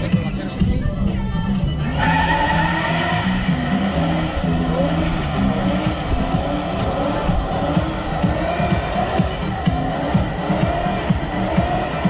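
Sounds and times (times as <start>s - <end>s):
tyres squealing on asphalt: 1.6s - 12.0s
car engine at high revs: 1.8s - 12.0s.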